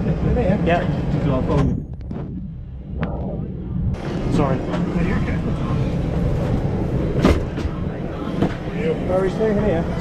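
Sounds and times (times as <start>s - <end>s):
aircraft cabin air rumble: 0.0s - 10.0s.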